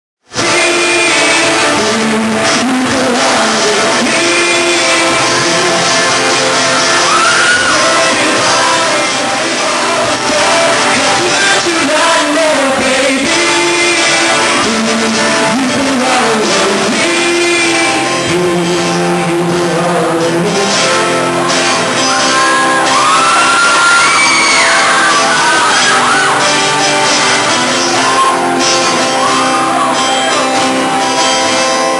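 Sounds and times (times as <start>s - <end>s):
man singing: 0.2s - 31.9s
acoustic guitar strumming: 0.3s - 31.9s
audience screaming and whooping: 6.4s - 10.9s, 21.1s - 31.1s.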